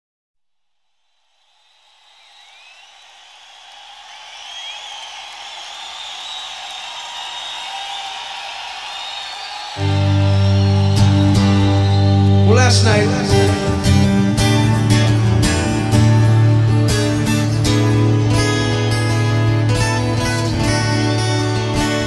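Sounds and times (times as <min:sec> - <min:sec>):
crowd cheering and whistling: 0:01.1 - 0:22.0.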